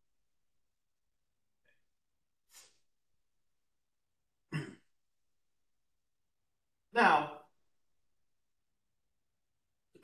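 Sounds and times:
person clearing throat: 4.5s - 4.9s.

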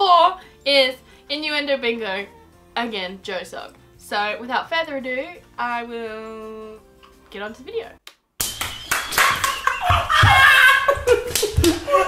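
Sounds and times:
rapid hand claps and slaps: 8.1s - 12.0s.

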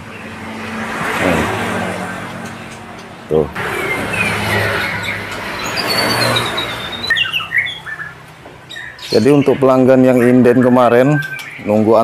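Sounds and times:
vehicle passing: 0.0s - 11.9s
small birds chirping: 0.0s - 12.0s.

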